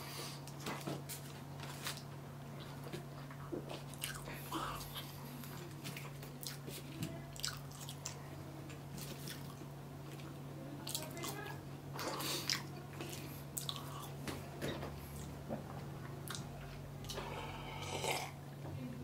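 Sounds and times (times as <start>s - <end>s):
steady low hum: 0.0s - 19.0s
person chewing food: 2.6s - 10.3s, 12.0s - 14.3s, 16.0s - 18.3s.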